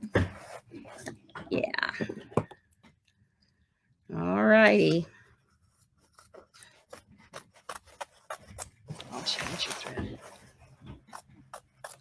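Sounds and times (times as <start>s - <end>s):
scissors snipping fabric: 6.1s - 9.2s, 11.0s - 12.0s.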